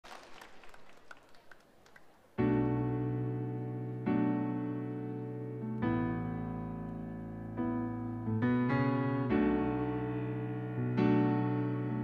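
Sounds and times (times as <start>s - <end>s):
faint audience applause: 0.0s - 2.6s.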